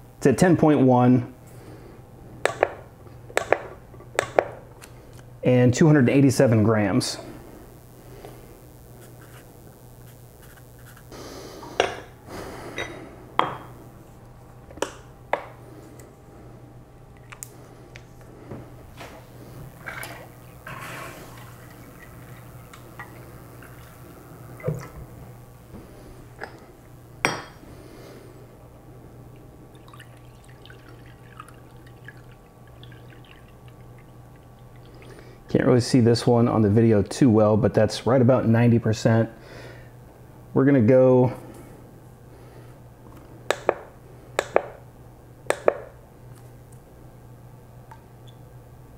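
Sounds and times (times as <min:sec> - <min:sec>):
water pouring and dripping: 0:29.7 - 0:35.0.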